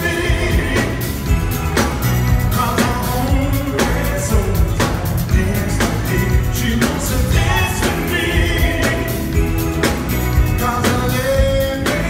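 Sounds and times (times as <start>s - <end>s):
man singing: 0.0s - 1.5s, 2.3s - 12.0s
live pop band: 0.0s - 12.0s.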